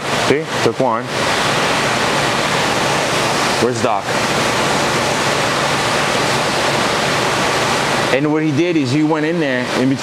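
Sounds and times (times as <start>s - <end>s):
water rushing through aquarium: 0.0s - 10.0s.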